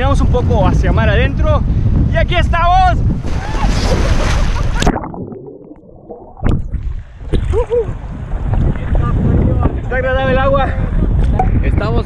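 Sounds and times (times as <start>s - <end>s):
muffled water sloshing underwater: 3.1s - 9.5s.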